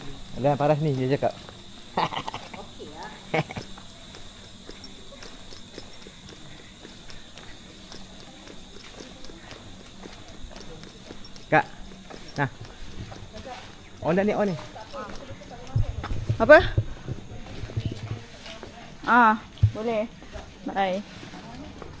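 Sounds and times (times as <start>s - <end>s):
footsteps on concrete paving: 0.5s - 22.0s.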